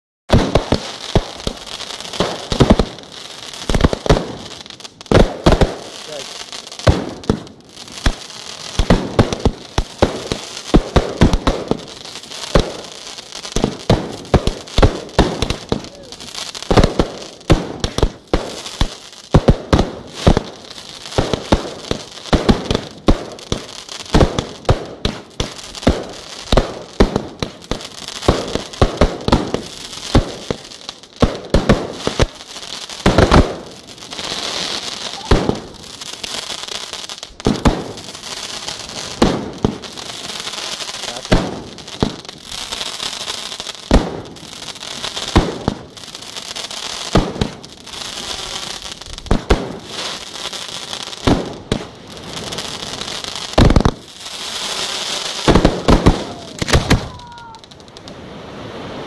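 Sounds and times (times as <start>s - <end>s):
fireworks bangs: 0.3s - 59.0s
fireworks crackling: 0.3s - 59.0s.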